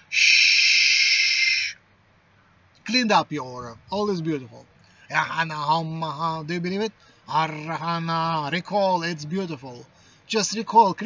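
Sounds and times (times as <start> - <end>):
man making shushing hiss: 0.0 - 1.8.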